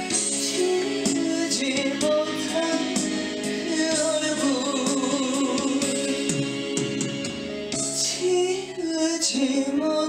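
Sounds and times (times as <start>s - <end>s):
instrumental backing music: 0.0s - 10.0s
man singing into microphone: 0.1s - 6.6s, 8.0s - 10.0s.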